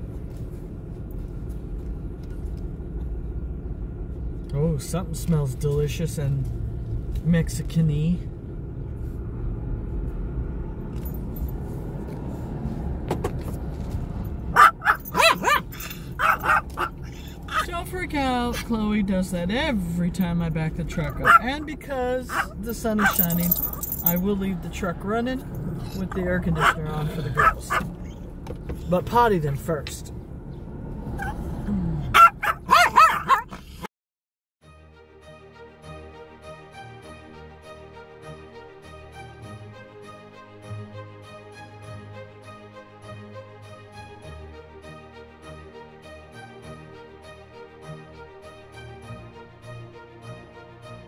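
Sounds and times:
truck engine running: 0.0s - 33.8s
dog barking and yipping: 14.5s - 17.7s, 21.1s - 21.6s, 22.2s - 23.8s, 26.5s - 28.2s, 32.1s - 33.8s.

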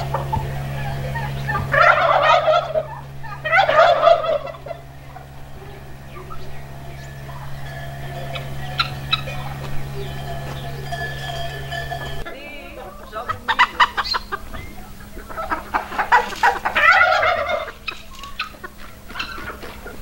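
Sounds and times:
flock calling: 0.0s - 20.0s
turkey gobbling: 0.0s - 20.0s.

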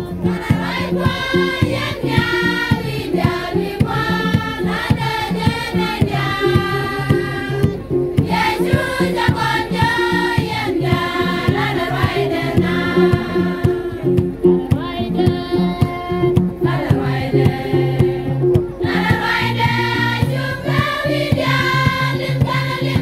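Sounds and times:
fast percussion beat: 0.0s - 23.0s
women's choir singing gospel: 0.0s - 23.0s.

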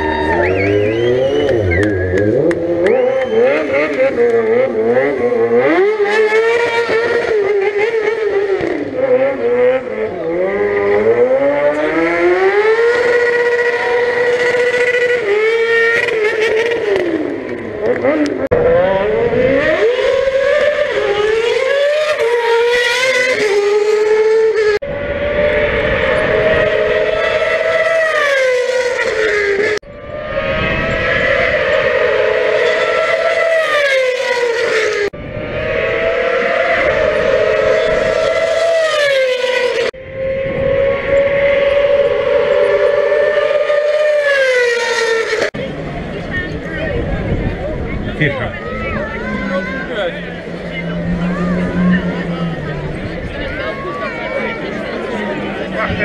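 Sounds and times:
motorcycle engines revving hard: 0.0s - 56.0s.

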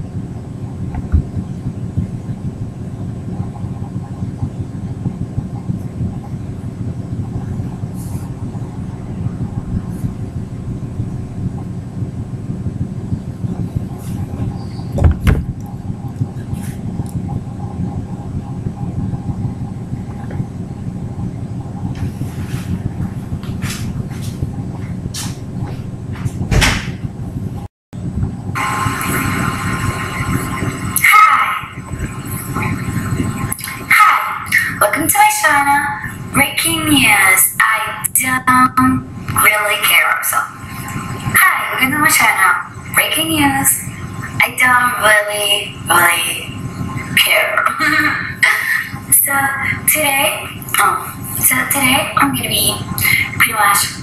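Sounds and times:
low rumbling noise: 0.0s - 54.0s
thin high whine: 0.0s - 54.0s
rustling and knocking: 14.0s - 15.6s
loud knocks: 14.9s - 15.6s, 25.2s - 27.2s.

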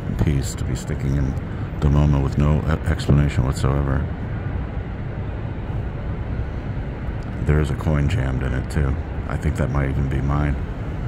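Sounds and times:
low city rumble: 0.0s - 11.0s.

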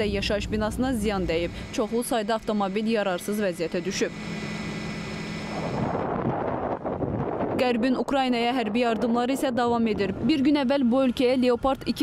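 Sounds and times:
low hum: 0.0s - 12.0s
low rumbling background noise: 0.0s - 12.0s.

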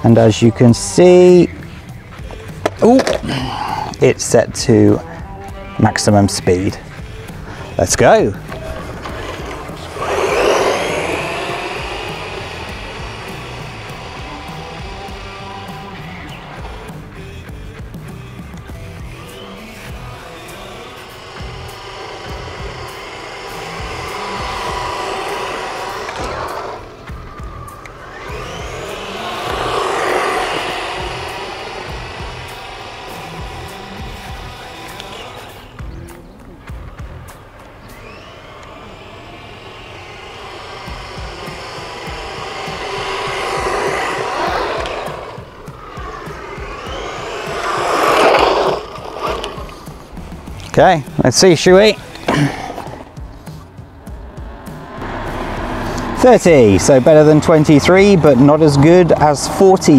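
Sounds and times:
rc truck electric motor whining: 4.9s - 59.9s.

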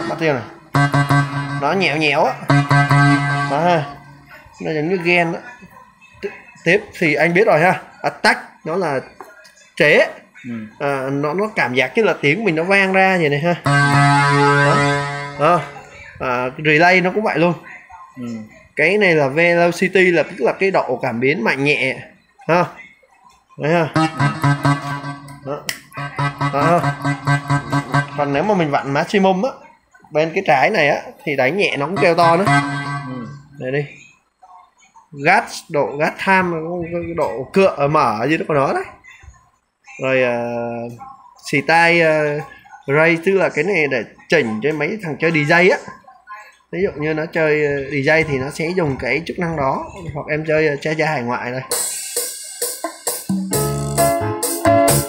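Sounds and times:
keyboard note struck repeatedly: 0.0s - 4.5s, 13.6s - 16.0s, 23.8s - 29.1s, 31.8s - 33.6s, 51.7s - 55.0s.

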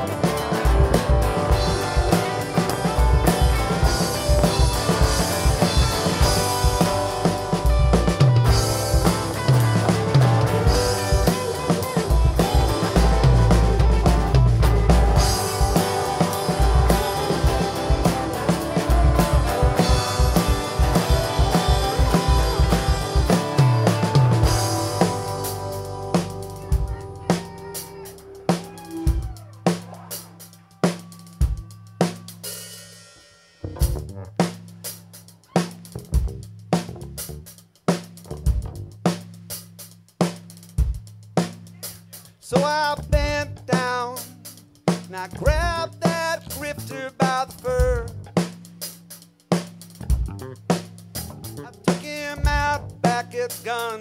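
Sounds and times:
drum hits: 0.0s - 32.4s
rock band playing: 0.0s - 54.0s
held bass note: 0.6s - 30.4s, 50.1s - 53.0s.

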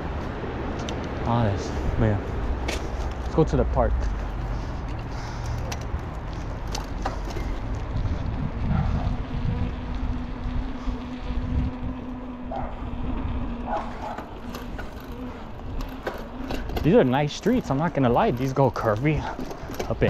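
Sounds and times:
vehicle engine humming: 0.0s - 20.0s.

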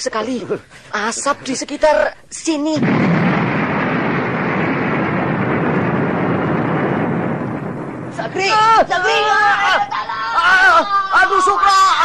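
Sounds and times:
loud rushing rumble: 2.8s - 9.0s.

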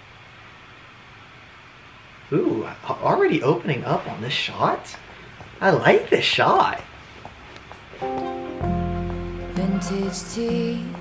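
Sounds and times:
low hiss of room tone: 0.0s - 11.0s.

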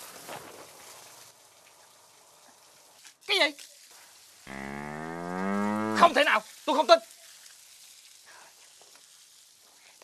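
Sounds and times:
cow mooing: 4.5s - 6.2s.

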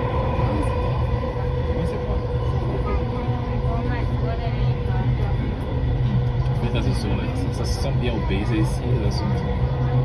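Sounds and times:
faint voices: 0.0s - 10.0s
steady hum: 0.0s - 10.0s.

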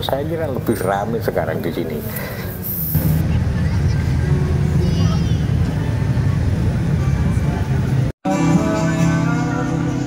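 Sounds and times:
vehicle engines rumbling: 0.0s - 8.2s
crowd voices: 0.0s - 10.0s.

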